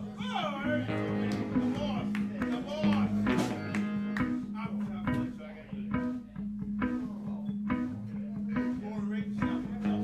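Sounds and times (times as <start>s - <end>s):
electric guitar riff: 0.6s - 10.0s.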